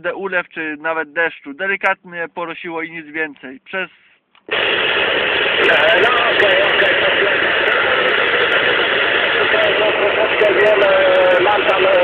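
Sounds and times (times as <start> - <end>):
radio static hiss: 3.7 - 12.0
faint radio voice: 5.6 - 8.2, 9.2 - 12.0.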